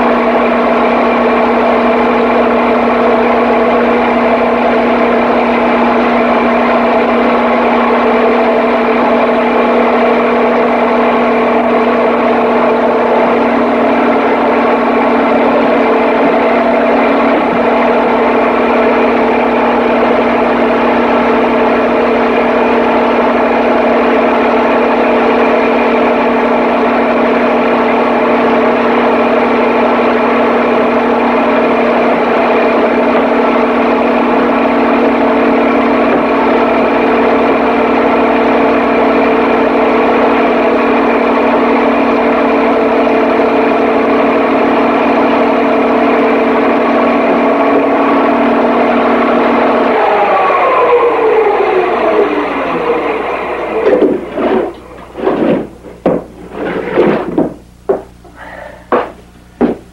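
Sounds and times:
engine loud pitched hum: 0.0 - 59.9.

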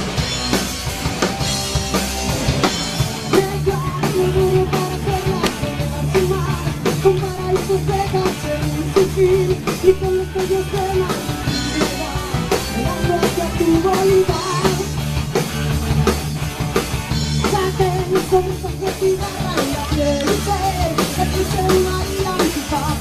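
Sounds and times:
bass guitar: 0.0 - 23.0
drum kit beat: 0.0 - 23.0
electric guitars: 0.0 - 23.0
woman singing: 3.3 - 14.9, 17.4 - 23.0.

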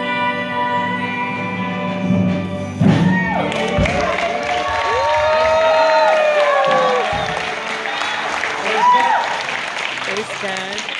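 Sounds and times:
applause: 3.4 - 10.9.

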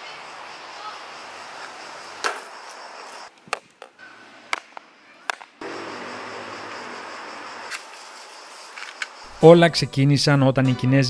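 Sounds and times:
steady hiss: 0.0 - 9.8.

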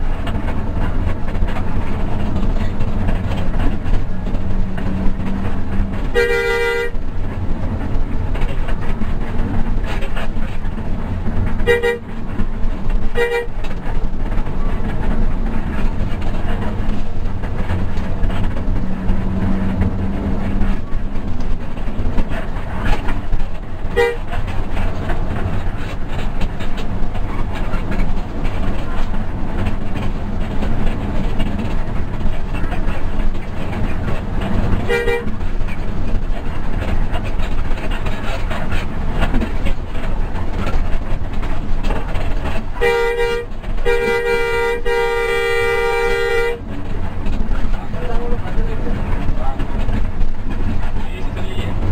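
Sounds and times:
bus diesel engine drone: 0.0 - 51.9
road noise: 0.0 - 51.9
vehicle horn toots: 6.1 - 7.0, 11.6 - 12.1, 13.1 - 13.6, 24.0 - 24.3, 34.8 - 35.3, 42.8 - 46.6.

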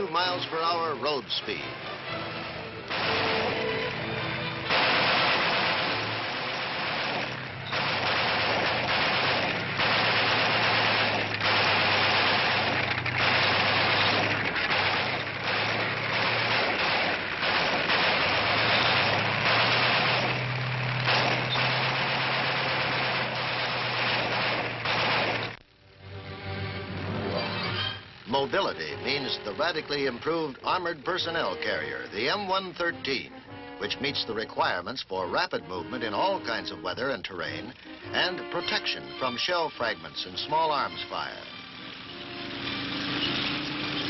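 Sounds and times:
tank engine drone: 0.0 - 44.0
continuous rattling clatter: 2.8 - 25.6.

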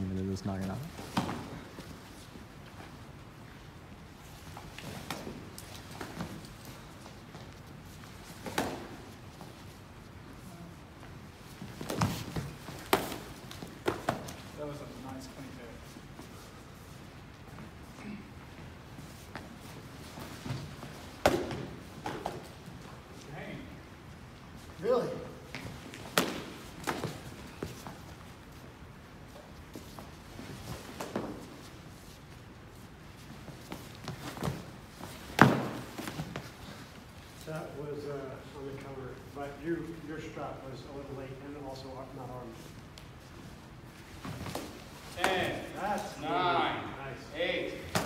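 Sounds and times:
padded staffs striking: 8.3 - 9.1, 20.1 - 22.5, 25.9 - 27.9, 33.7 - 36.6, 47.8 - 48.0.

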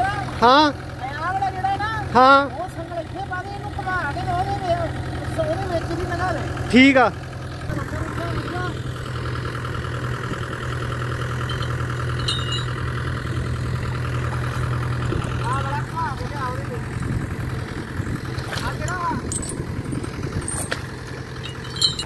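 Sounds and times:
tractor diesel engine idling: 0.0 - 22.0
voices calling out: 0.0 - 22.0.

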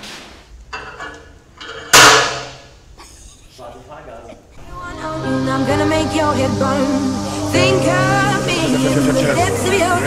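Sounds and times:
metal weight plate clank: 0.8 - 2.7.

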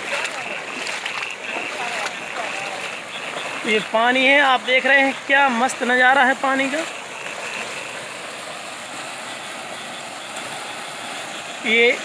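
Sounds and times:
floodwater rushing over culvert: 0.0 - 12.0.

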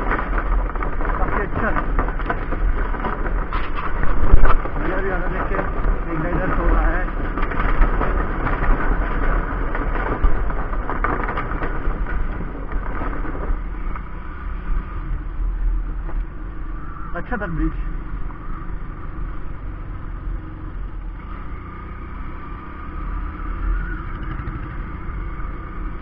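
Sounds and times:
motorcycle engine running: 0.0 - 17.1, 17.8 - 26.0
wind rumble on microphone: 0.0 - 26.0.

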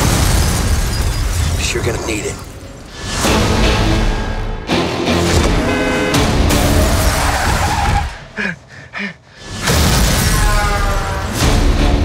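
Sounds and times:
dramatic music: 2.6 - 8.4, 9.4 - 12.0
tyres skidding: 5.0 - 8.6.

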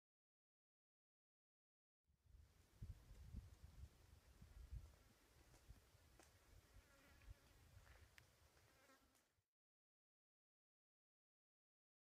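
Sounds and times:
faint insect buzz: 6.2 - 9.4.

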